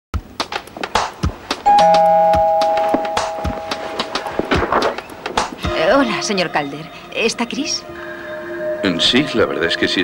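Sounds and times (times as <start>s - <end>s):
two-tone doorbell chime: 1.7s - 4.6s.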